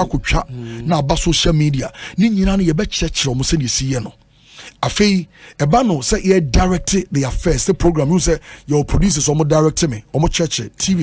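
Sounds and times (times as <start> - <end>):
person talking: 0.0 - 4.2.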